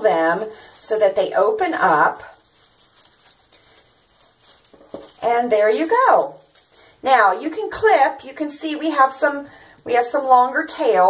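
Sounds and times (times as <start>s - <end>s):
plastic ribbon crinkling: 0.0s - 11.0s.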